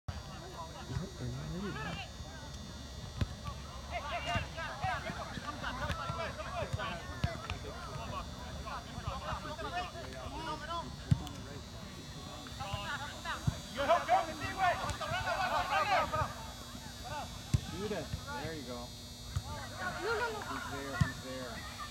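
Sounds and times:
players shouting: 3.4 - 11.1, 12.6 - 18.5, 19.4 - 21.9.

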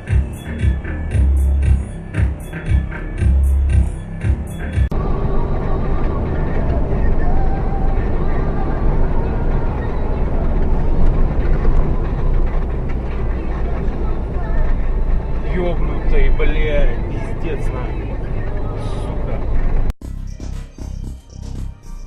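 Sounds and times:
vehicle engine and road rumble: 0.0 - 22.0.

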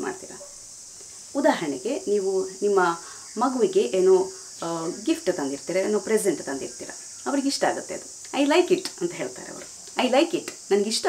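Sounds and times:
woman speaking: 0.0 - 0.4, 1.4 - 11.0
steady high-pitched hiss: 0.0 - 11.0.

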